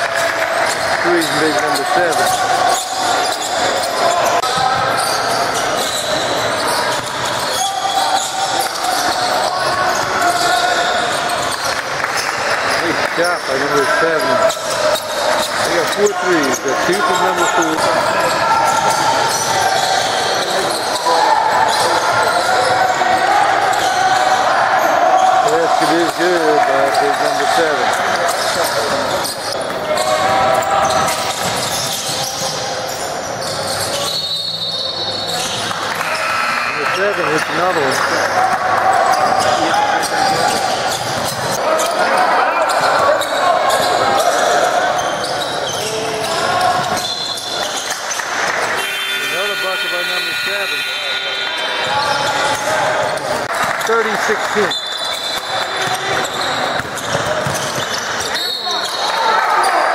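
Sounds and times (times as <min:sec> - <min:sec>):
players calling out: 0:00.0 - 0:59.9
voices in echoing hall: 0:00.0 - 0:59.9.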